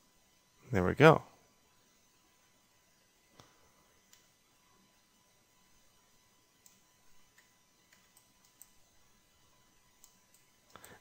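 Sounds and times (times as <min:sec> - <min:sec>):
computer mouse and keyboard clicks: 0:06.6 - 0:08.8.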